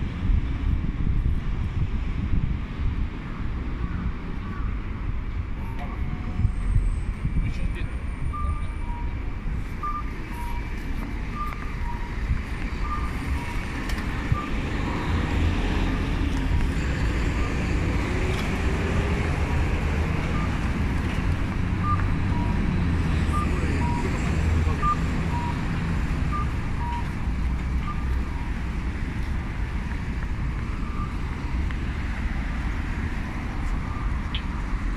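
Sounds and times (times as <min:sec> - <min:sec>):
road traffic rumble: 0:00.0 - 0:34.9
pedestrian crossing signal chirps: 0:05.6 - 0:06.8, 0:08.0 - 0:17.8, 0:19.0 - 0:20.7, 0:21.8 - 0:29.0, 0:30.4 - 0:32.0, 0:33.8 - 0:34.8.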